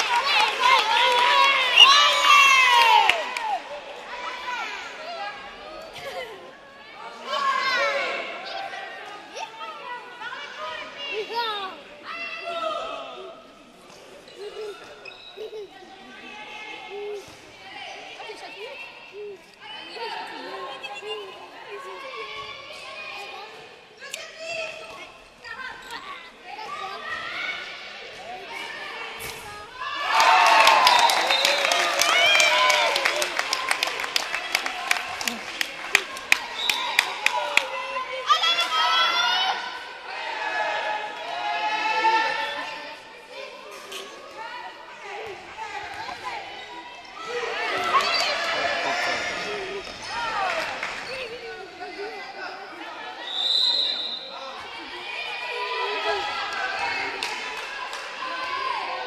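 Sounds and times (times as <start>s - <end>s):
spectators' voices echoing: 0.0s - 59.0s.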